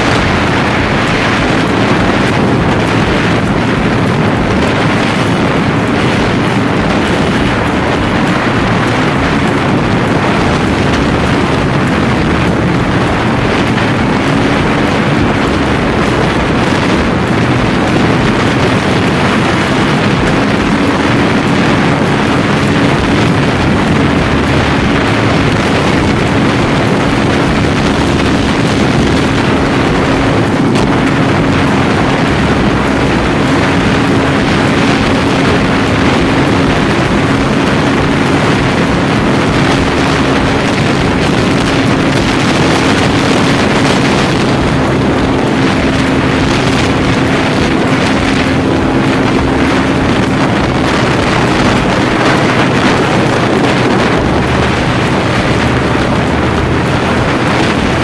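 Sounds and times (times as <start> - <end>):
motorcycle engine cruising: 0.0 - 58.0
wind noise on microphone: 0.0 - 58.0.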